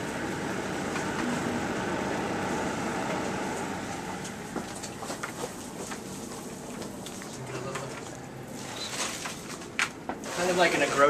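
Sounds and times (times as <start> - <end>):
humidifier fan whoosh: 0.0 - 10.9.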